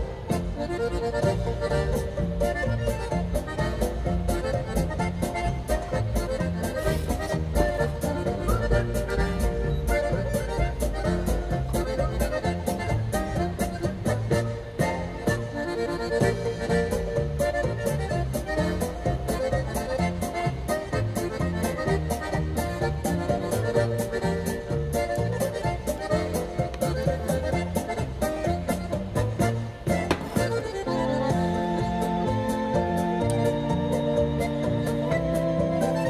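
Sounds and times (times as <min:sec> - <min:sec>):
accordion polka music: 0:00.0 - 0:36.0.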